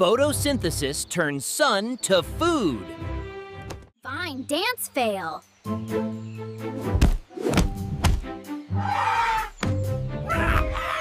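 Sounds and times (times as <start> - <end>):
background music: 1.8 - 11.0.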